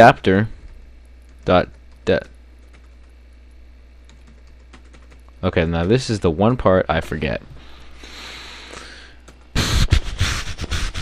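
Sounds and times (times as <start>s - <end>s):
low steady hum: 0.0s - 11.0s
computer keyboard keystrokes: 1.2s - 3.1s, 4.1s - 5.4s, 9.2s - 9.5s.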